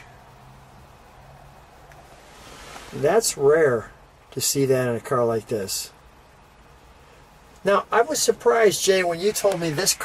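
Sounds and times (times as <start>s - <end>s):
faint hiss: 0.0s - 10.0s
steady low hum: 0.0s - 10.0s.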